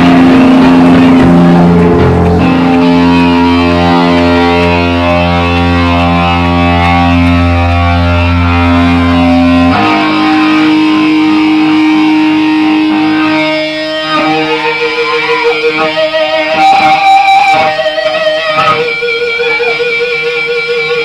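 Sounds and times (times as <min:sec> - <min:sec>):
distorted guitar and bass chord: 0:00.0 - 0:21.0.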